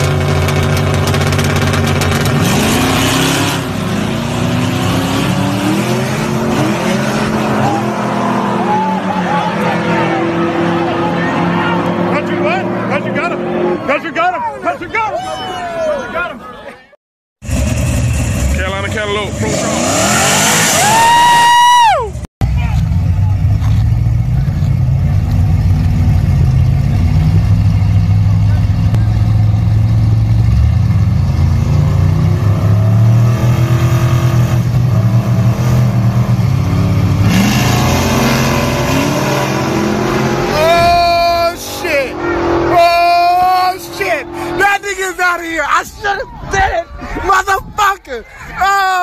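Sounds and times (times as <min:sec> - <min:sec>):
drag car engine revving: 0:00.0 - 0:13.9, 0:17.4 - 0:21.4, 0:22.4 - 0:44.9
deep engine rumble: 0:21.9 - 0:45.1.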